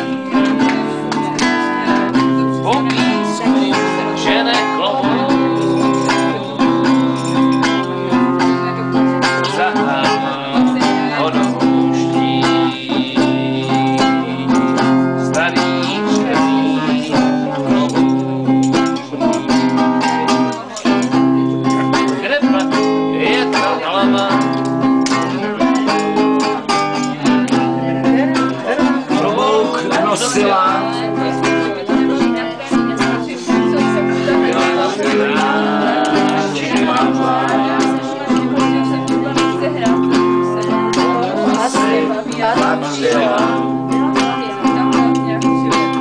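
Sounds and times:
acoustic guitar strumming: 0.0s - 46.0s
man singing: 0.0s - 46.0s.

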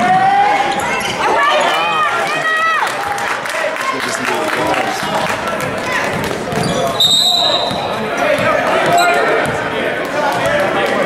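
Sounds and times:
crowd voices in a gymnasium: 0.0s - 11.0s
referee's whistle blowing: 7.0s - 7.9s, 8.9s - 9.4s.

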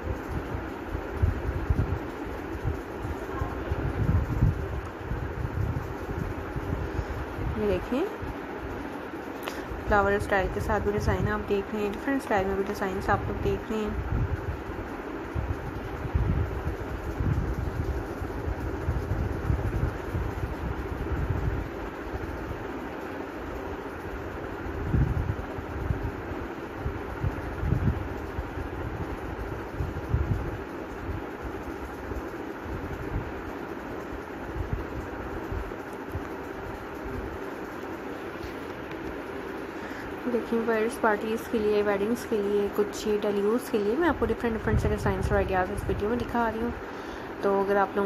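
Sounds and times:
faint steady hum: 0.0s - 48.0s
steady rushing noise: 0.0s - 48.0s.

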